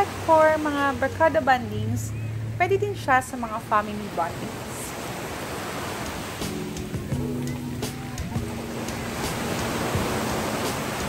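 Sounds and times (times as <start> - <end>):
small waves breaking on shore: 0.0 - 1.4, 3.5 - 11.0
background music with held tones: 0.0 - 3.4, 6.0 - 11.0.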